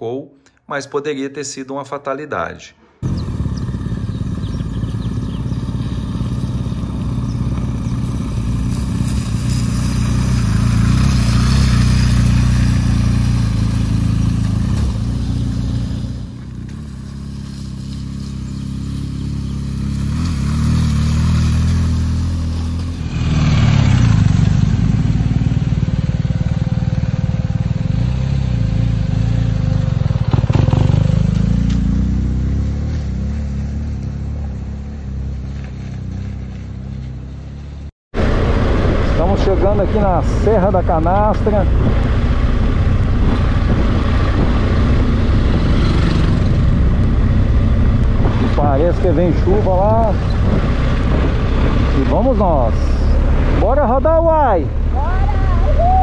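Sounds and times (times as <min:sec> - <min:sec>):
motorcycle engines passing by: 0:03.0 - 0:56.0.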